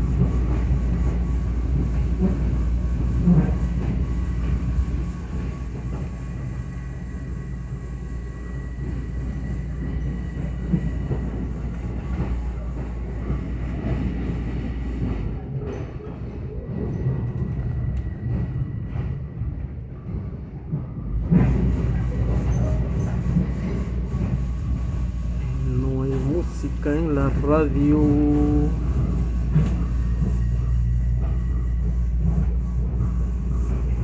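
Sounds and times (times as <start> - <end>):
train rumble: 0.0 - 34.0.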